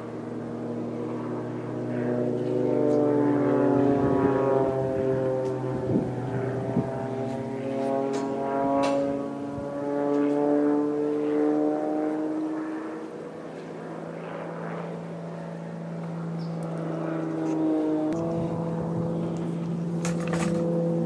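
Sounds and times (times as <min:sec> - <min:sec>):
propeller plane engine: 0:00.0 - 0:21.0.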